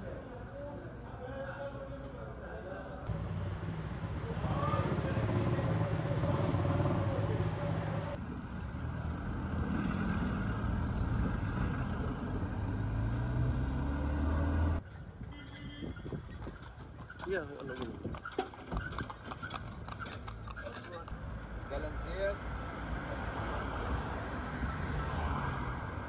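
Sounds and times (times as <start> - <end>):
street noise: 0.0 - 26.0
vehicle engine rumble: 3.1 - 21.9.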